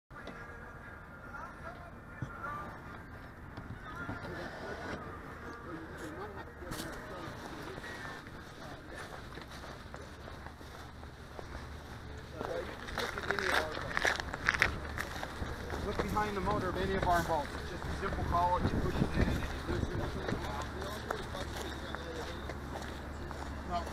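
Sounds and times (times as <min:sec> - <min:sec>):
distant people talking: 0:00.1 - 0:23.9.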